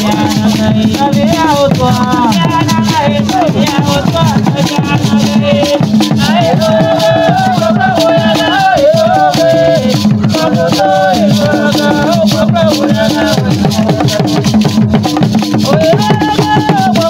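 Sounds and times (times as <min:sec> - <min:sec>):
fast drumming: 0:00.0 - 0:17.0
group of voices singing: 0:00.0 - 0:17.0
rattles shaking: 0:00.0 - 0:17.0.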